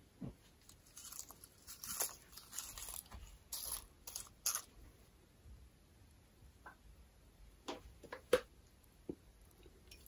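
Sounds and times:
potato chips crunching: 0:00.7 - 0:04.7.

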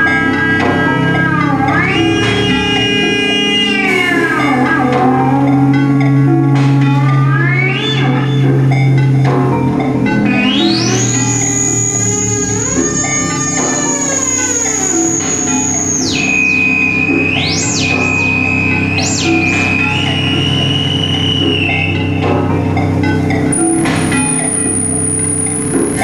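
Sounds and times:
high synth tone swooping: 0:00.0 - 0:22.2
electronic synthesizer music: 0:00.0 - 0:26.0.

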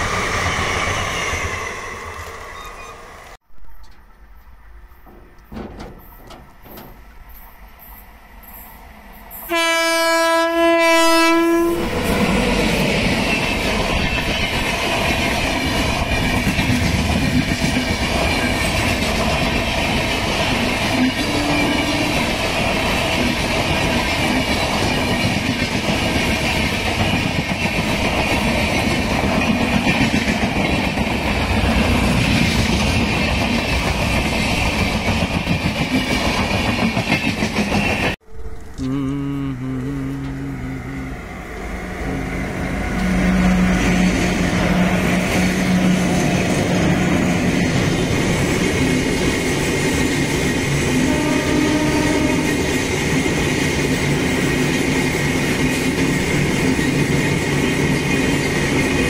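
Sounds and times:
train rumbling past: 0:00.0 - 0:59.0
wheels clattering on rails: 0:03.7 - 0:07.5, 0:12.6 - 0:38.2, 0:42.6 - 0:59.0
locomotive horn blast: 0:09.5 - 0:12.6, 0:21.0 - 0:22.3, 0:38.2 - 0:46.3, 0:50.9 - 0:52.8.

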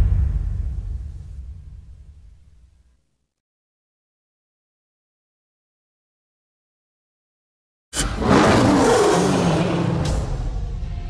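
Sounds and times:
lion roaring: 0:08.0 - 0:10.3.

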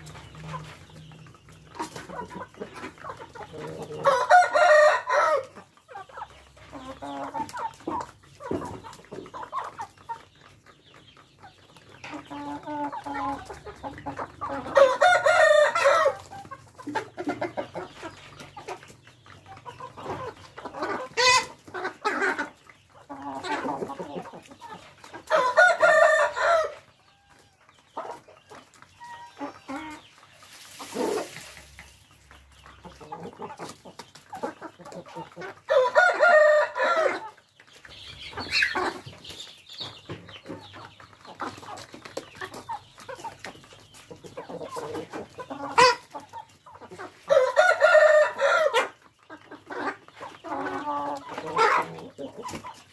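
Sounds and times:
hens clucking: 0:00.0 - 0:52.9.

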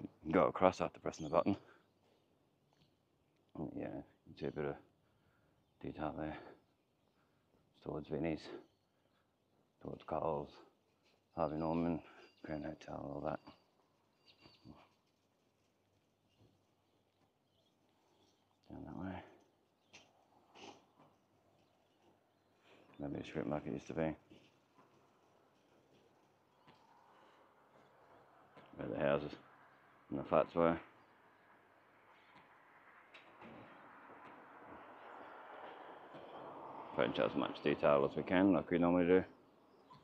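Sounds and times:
faint high chirps: 0:11.0 - 0:15.1
distant traffic hiss: 0:18.7 - 0:39.8.

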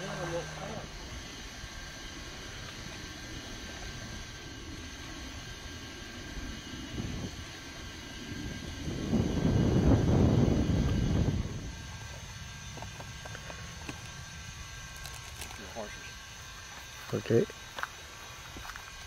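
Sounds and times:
wind rumbling on microphone: 0:00.9 - 0:15.6.

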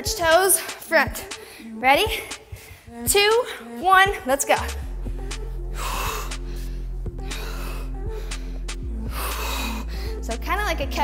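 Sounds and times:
workout music with bass line: 0:00.0 - 0:11.0
woman breathing hard: 0:01.4 - 0:03.8, 0:05.5 - 0:10.3.

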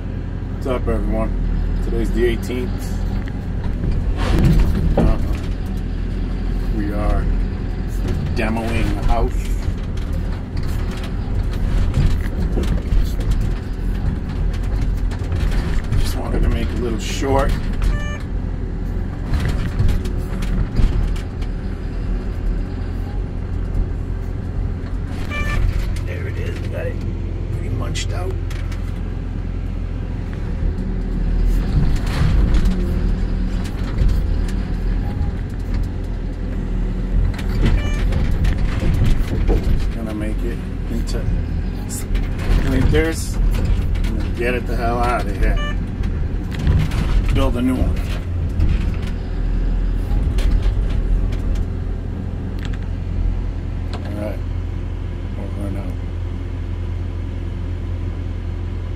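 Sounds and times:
excavator diesel engine running: 0:00.0 - 0:58.9.

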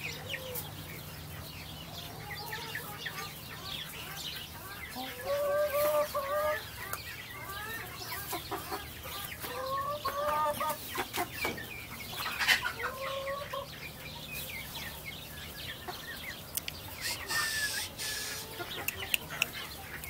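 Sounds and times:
chickens clucking: 0:00.0 - 0:20.0.

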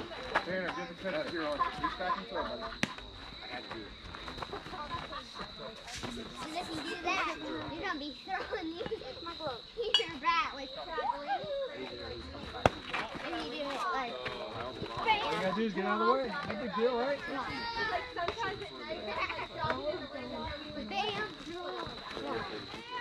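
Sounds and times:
children and adults talking: 0:00.0 - 0:23.0.

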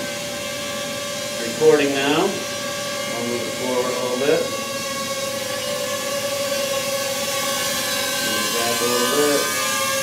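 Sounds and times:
drone propellers whining: 0:00.0 - 0:10.0.

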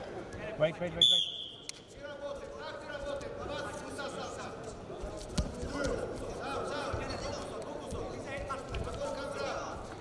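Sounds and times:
voices calling out in a hall: 0:00.0 - 0:10.0.

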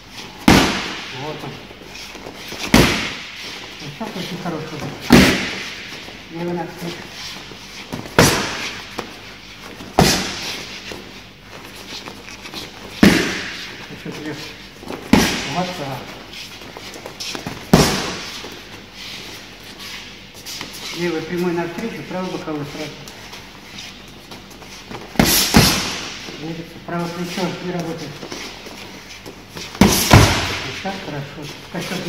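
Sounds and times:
boxing gloves smacking focus mitts: 0:00.4 - 0:01.2, 0:02.1 - 0:03.7, 0:04.8 - 0:06.0, 0:07.9 - 0:09.2, 0:09.8 - 0:10.7, 0:12.2 - 0:14.0, 0:16.9 - 0:18.6, 0:24.5 - 0:26.4, 0:29.2 - 0:30.9.

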